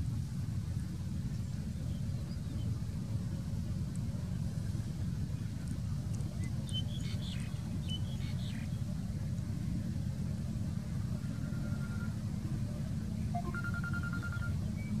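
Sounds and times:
steady low rumble: 0.0s - 15.0s
thin held high tone: 11.2s - 12.2s, 13.4s - 15.0s.

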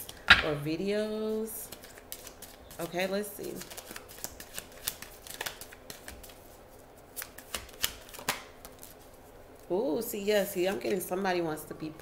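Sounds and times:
cards being shuffled: 1.7s - 9.1s.

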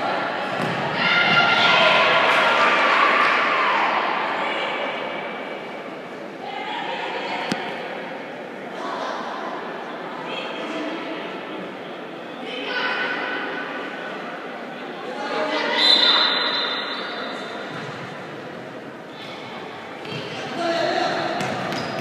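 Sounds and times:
people shouting in a hall: 0.0s - 11.4s, 12.4s - 17.7s.

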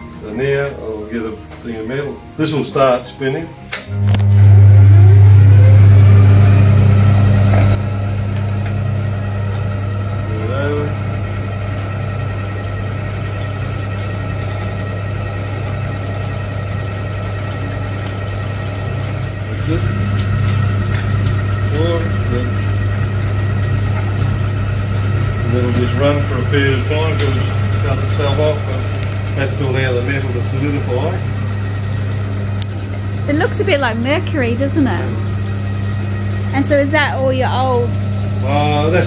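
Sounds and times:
casting machine electric hum: 0.0s - 39.0s.

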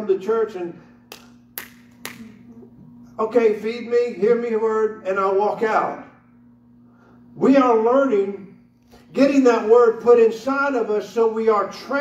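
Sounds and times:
sharp hand claps: 1.1s - 2.4s.

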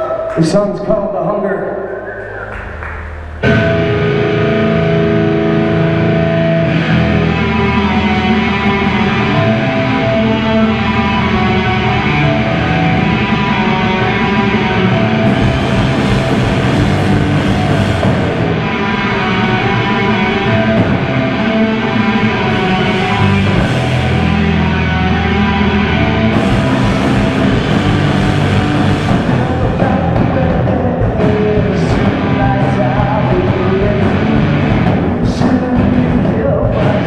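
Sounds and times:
live rock band playing: 2.6s - 37.0s
low hum: 8.6s - 32.4s
cymbals crashing: 26.3s - 29.4s.

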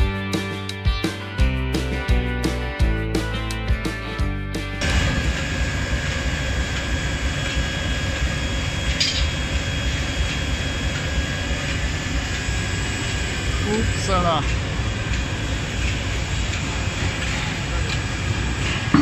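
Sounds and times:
constant whine: 4.8s - 19.0s
forge furnace and machinery noise: 4.8s - 19.0s.

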